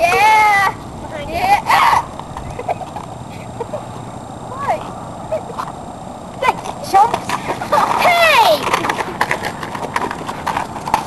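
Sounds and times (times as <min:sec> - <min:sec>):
children running on pavement: 0:01.5 - 0:04.0, 0:06.4 - 0:11.0.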